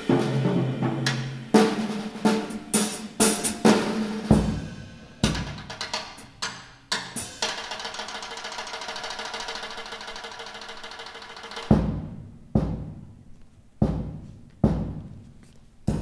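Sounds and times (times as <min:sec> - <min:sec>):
deep drum hits: 0:00.0 - 0:06.2, 0:11.7 - 0:13.2, 0:13.8 - 0:15.1
snare and cymbal strikes: 0:00.0 - 0:08.7, 0:10.6 - 0:13.2, 0:13.8 - 0:15.3
fast drum roll: 0:00.0 - 0:13.2.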